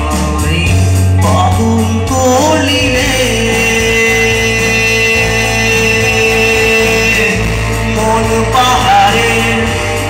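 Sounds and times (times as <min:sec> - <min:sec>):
electric guitar and keyboard chord: 0:00.0 - 0:10.0.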